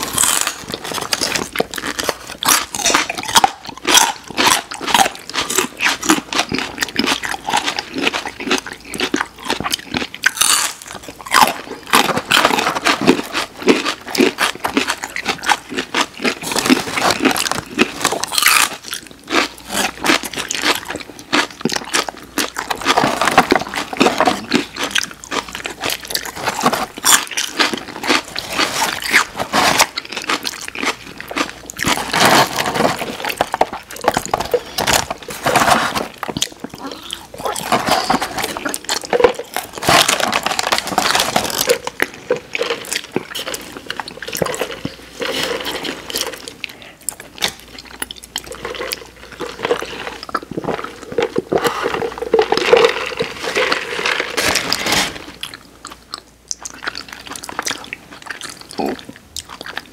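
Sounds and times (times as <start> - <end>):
crunching celery and carrot bites: 0.0 - 59.9.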